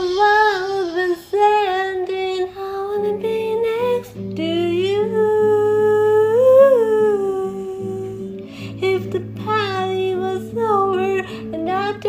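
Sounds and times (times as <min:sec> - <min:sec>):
acoustic guitar: 0:00.0 - 0:12.0
solo voice singing: 0:00.0 - 0:12.0.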